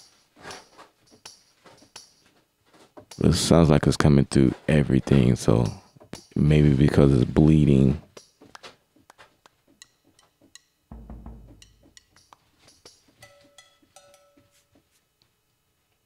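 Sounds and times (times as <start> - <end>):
deep drum thump: 10.9 - 12.0
sharp percussion hits: 10.9 - 12.4.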